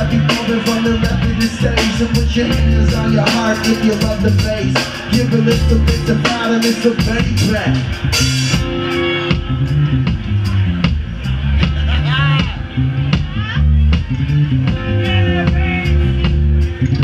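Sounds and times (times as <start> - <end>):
drum kit beat: 0.0 - 17.0
electric bass guitar: 0.0 - 17.0.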